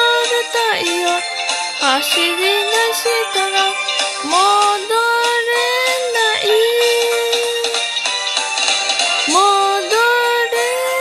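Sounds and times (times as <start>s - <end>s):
backing track: 0.0s - 11.0s
person singing pop song: 0.0s - 11.0s.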